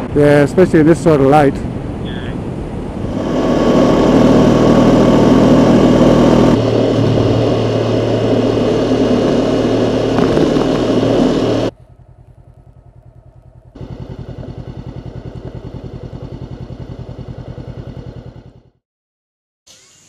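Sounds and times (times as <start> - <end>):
wind rush: 0.0 - 11.7
motorcycle engine at road speed: 2.6 - 18.8
motorcycle engine at low revs: 2.9 - 18.8.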